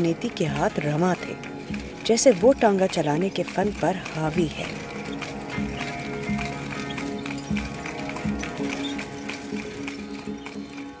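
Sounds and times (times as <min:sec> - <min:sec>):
background music with held tones: 0:00.0 - 0:11.0
horse hooves clip-clopping: 0:00.0 - 0:11.0.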